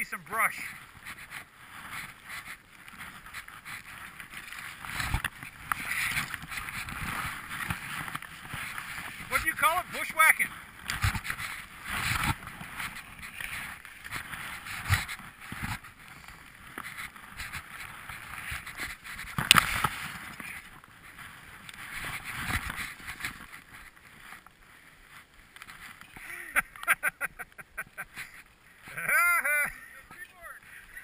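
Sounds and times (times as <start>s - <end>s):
skis swishing through powder snow: 0.0s - 31.0s
brushing past tree branches: 0.6s - 26.2s.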